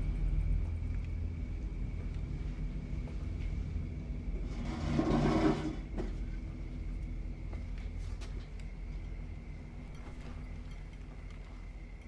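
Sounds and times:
low rumbling drone: 0:00.0 - 0:07.6.

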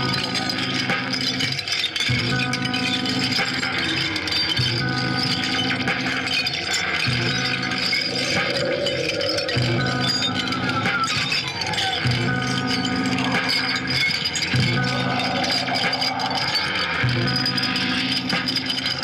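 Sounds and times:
low droning electronic loop: 0:00.0 - 0:19.0
small clicks and rattles: 0:00.0 - 0:19.0.

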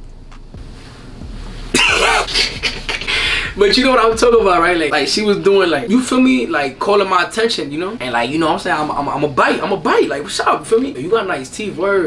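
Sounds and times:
man laughing: 0:01.8 - 0:04.7.

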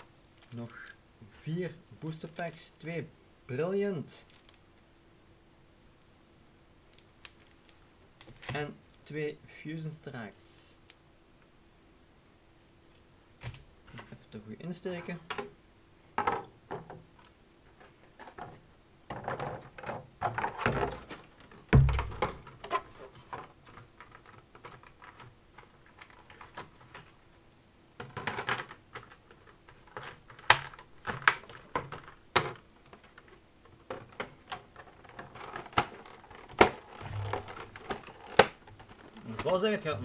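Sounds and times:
plastic trays crinkling: 0:18.1 - 0:27.2, 0:28.0 - 0:40.0
heavy thump: 0:21.7 - 0:22.4.

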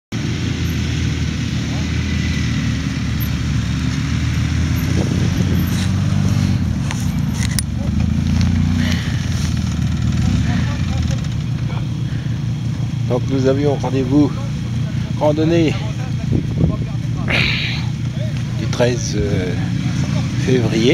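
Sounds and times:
quad bike engines idling: 0:00.2 - 0:20.9.

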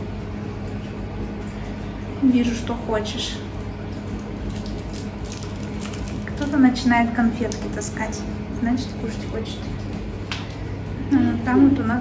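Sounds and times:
steady low hum: 0:00.0 - 0:12.0
sweet wrapper crinkling: 0:03.6 - 0:06.8.

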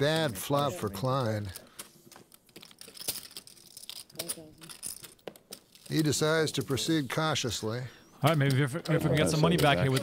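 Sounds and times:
poker chips clicking: 0:01.2 - 0:05.9.

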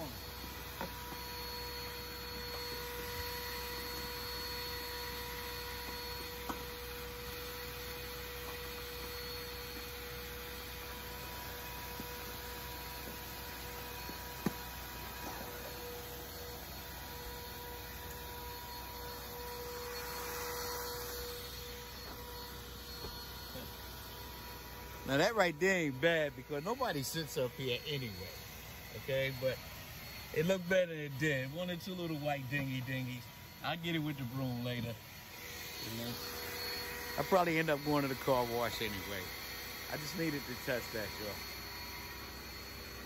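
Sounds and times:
vacuum cleaner running: 0:00.0 - 0:43.0.

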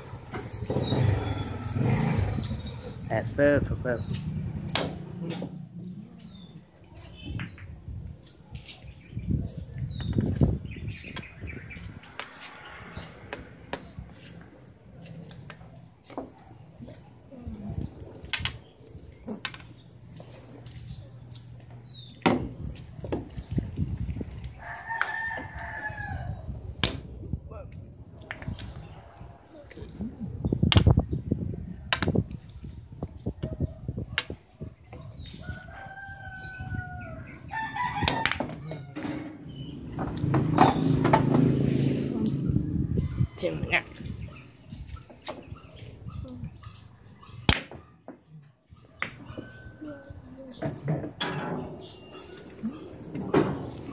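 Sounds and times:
rooster crowing: 0:24.6 - 0:26.4, 0:35.4 - 0:39.2.

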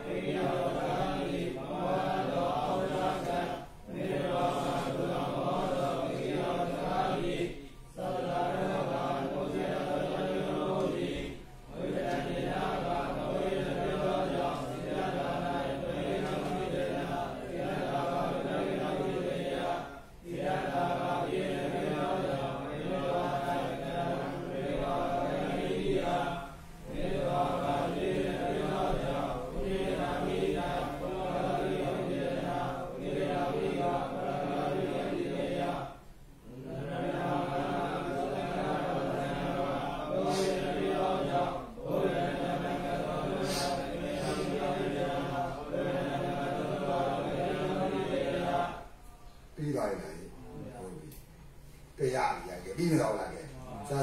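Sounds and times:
monk chanting: 0:00.0 - 0:48.9, 0:52.0 - 0:54.0.

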